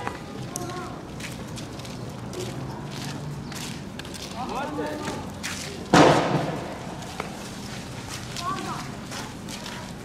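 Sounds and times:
tear gas launcher bang: 5.9 - 6.8.

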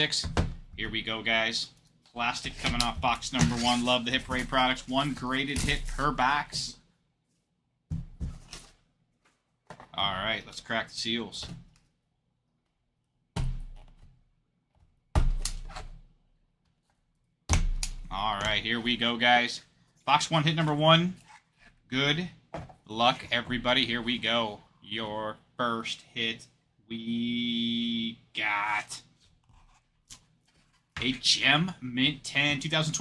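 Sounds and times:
plastic slab handling noise: 2.4 - 6.6.

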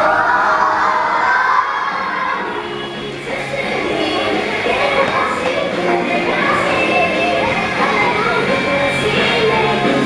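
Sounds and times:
background music: 0.0 - 10.0
children shouting: 0.0 - 10.0.

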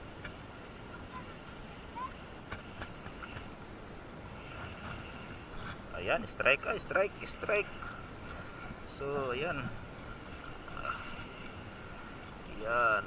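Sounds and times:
water: 0.0 - 13.0
wind: 0.0 - 13.0.

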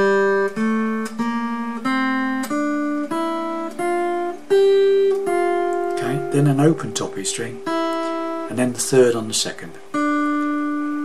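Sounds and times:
acoustic guitar picking melody: 0.0 - 11.0.

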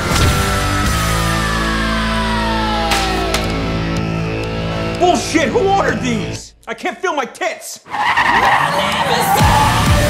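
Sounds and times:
trailer music with bass drops: 0.0 - 6.5
tyres squealing in a burnout: 7.9 - 10.0.

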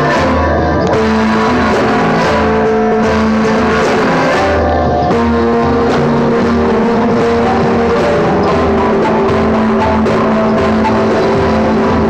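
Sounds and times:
accordion chord: 0.0 - 12.0
acoustic guitar: 0.0 - 12.0.

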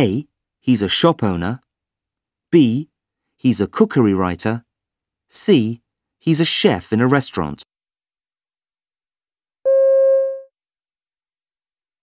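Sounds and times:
electronic beep: 9.7 - 10.5.

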